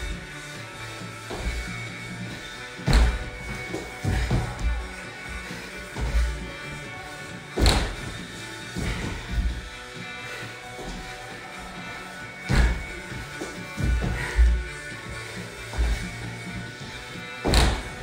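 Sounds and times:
music playing: 0:00.0 - 0:18.0
body thudding on wooden floor: 0:01.3 - 0:06.6, 0:07.5 - 0:09.8, 0:12.4 - 0:18.0.

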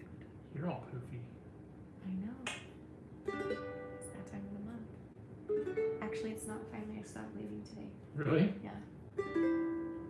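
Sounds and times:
ukulele strummed chords: 0:09.2 - 0:10.0.

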